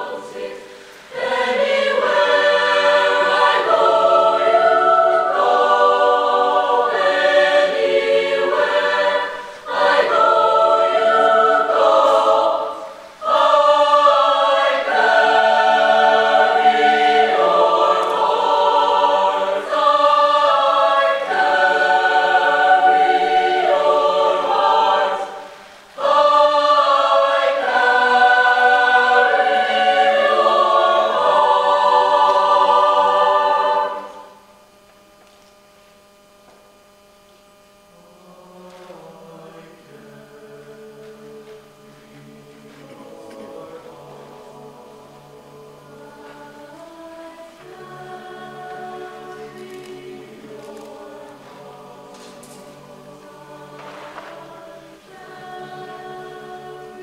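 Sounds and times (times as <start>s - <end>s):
choir singing in harmony: 0.0s - 35.1s, 37.6s - 57.0s.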